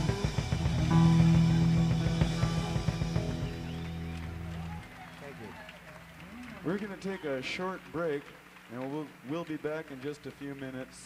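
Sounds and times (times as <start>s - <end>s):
rock band final chord: 0.0s - 4.9s
man talking into microphone: 6.6s - 11.0s.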